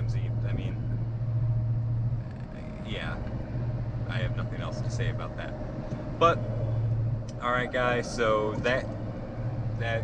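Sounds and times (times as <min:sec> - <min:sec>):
truck drone from inside cab: 0:00.0 - 0:10.0.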